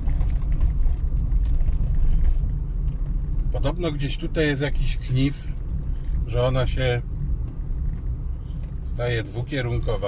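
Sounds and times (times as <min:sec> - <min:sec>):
car interior engine and tyre rumble: 0:00.0 - 0:10.0.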